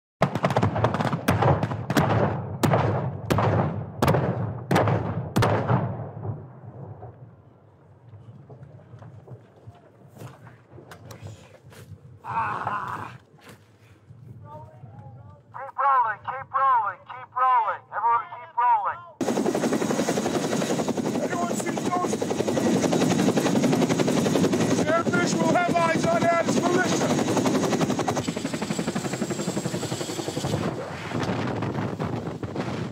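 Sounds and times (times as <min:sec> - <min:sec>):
rumble of pyrotechnic explosions: 0:00.2 - 0:09.8, 0:30.4 - 0:32.9
helicopter rotors chopping: 0:19.2 - 0:32.9.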